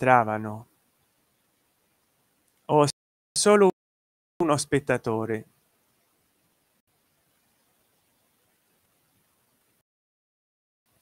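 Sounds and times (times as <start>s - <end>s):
faint steady hiss: 0.0s - 3.6s, 4.4s - 9.8s.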